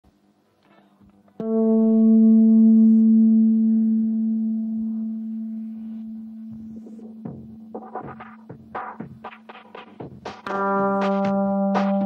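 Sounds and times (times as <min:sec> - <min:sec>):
electric guitar note ringing: 0:01.4 - 0:09.5, 0:10.4 - 0:12.0.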